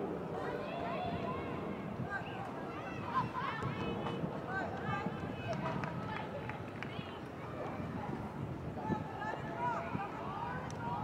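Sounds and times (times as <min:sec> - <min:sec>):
open-air background noise: 0:00.0 - 0:11.0.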